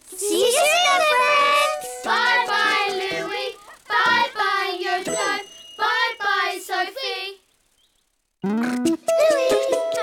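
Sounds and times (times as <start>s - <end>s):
children singing: 0.2s - 7.4s
backing music: 8.4s - 10.0s.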